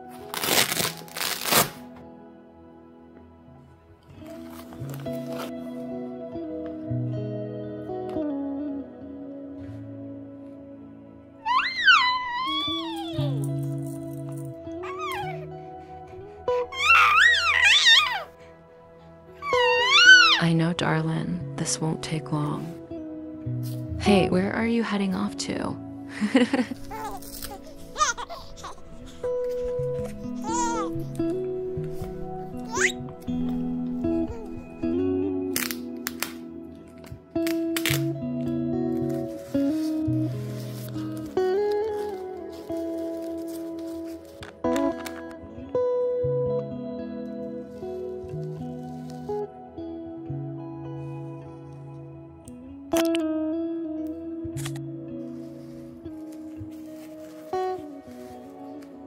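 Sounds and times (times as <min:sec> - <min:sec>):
soft background music: 0:00.0 - 0:59.0
diaper tabs crackling open: 0:00.1 - 0:01.9, 0:26.8 - 0:34.7, 0:35.5 - 0:38.2, 0:54.6 - 0:54.8
baby crying: 0:11.4 - 0:13.4, 0:14.8 - 0:18.4, 0:19.4 - 0:20.4, 0:26.8 - 0:34.9.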